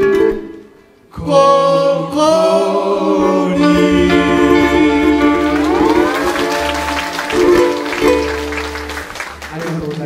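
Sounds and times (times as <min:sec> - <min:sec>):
band of ukuleles and guitars: 0:00.0 - 0:10.0
audience applause: 0:04.9 - 0:10.0.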